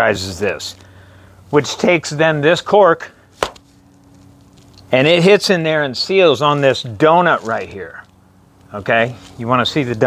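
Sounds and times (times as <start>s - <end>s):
faint steady hum: 0.0s - 10.0s
sharp knock: 3.4s - 3.6s.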